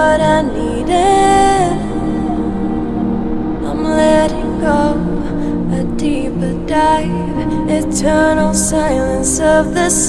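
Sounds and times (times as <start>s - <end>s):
slow instrumental song: 0.0s - 10.0s.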